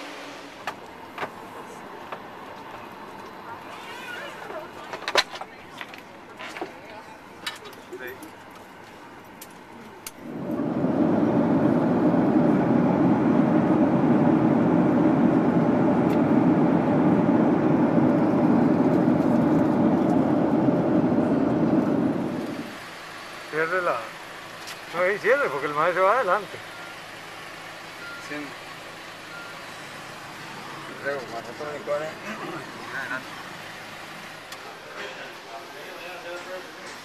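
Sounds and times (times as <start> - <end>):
airliner engine and airflow drone: 9.4 - 24.8.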